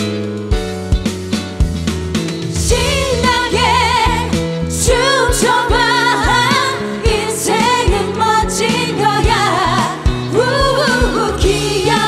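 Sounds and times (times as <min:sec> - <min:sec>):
pop backing track with drum beat: 0:00.0 - 0:12.0
women singing into microphones: 0:02.6 - 0:12.0.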